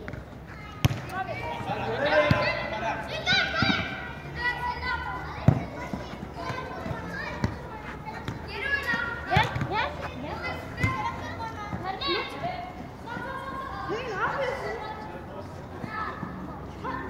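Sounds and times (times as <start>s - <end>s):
children shouting: 0.7s - 14.9s, 15.8s - 17.0s
ball being kicked: 0.8s - 1.1s, 9.3s - 9.8s.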